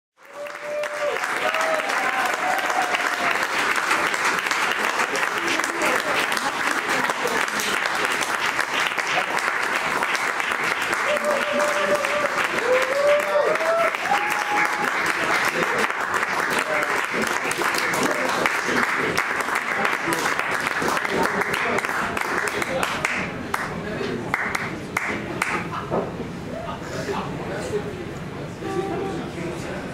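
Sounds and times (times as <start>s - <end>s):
whoops: 0.2s - 3.4s, 10.9s - 15.2s
audience applauding: 0.2s - 25.8s.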